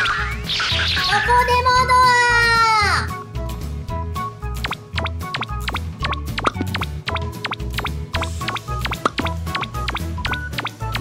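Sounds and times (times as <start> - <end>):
children's music with bass beat: 0.0 - 11.0
high-pitched cartoon voice: 1.0 - 3.1.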